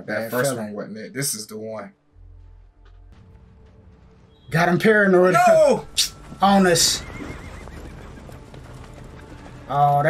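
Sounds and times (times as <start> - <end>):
hoofbeats in snow: 2.1 - 10.0
horse whinnying: 6.7 - 8.7.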